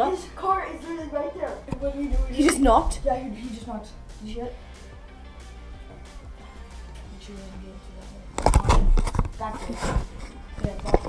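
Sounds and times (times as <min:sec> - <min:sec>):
voice: 0:00.0 - 0:04.6, 0:07.2 - 0:08.3, 0:10.6 - 0:11.0.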